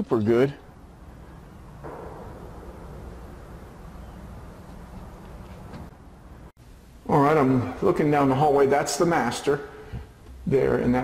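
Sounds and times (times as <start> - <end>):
low outdoor rumble: 0.3 - 11.0.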